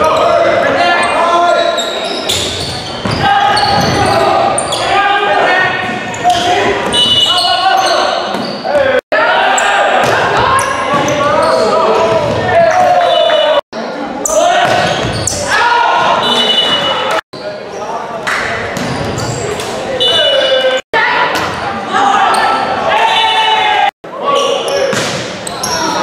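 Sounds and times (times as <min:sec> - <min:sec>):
players shouting: 0:00.0 - 0:13.6, 0:14.2 - 0:17.2, 0:20.0 - 0:26.0
sneakers squeaking on hardwood: 0:01.0 - 0:05.0, 0:05.8 - 0:09.0, 0:14.2 - 0:18.0, 0:18.7 - 0:20.8.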